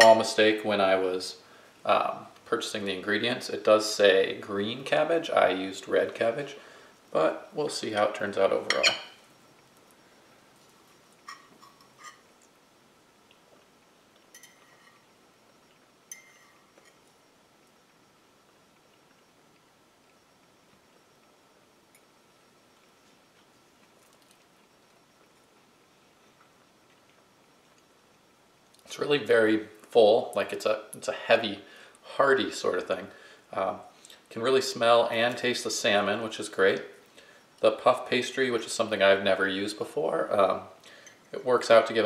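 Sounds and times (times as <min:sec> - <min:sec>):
fork clinking on plate: 0:08.7 - 0:09.1, 0:14.3 - 0:15.0, 0:16.1 - 0:17.0.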